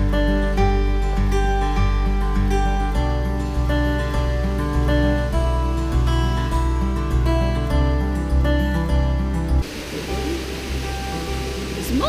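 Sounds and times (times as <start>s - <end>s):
acoustic guitar music: 0.0s - 12.0s
waterfall rushing: 9.6s - 12.0s.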